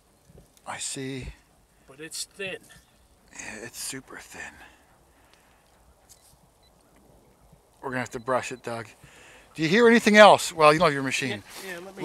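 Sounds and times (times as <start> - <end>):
man speaking: 0.7 - 4.8, 7.8 - 9.0, 9.6 - 12.0.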